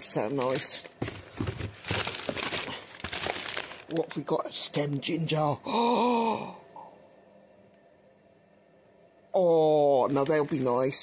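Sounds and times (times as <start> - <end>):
plastic packets crinkling: 0.2 - 4.3, 9.9 - 11.0.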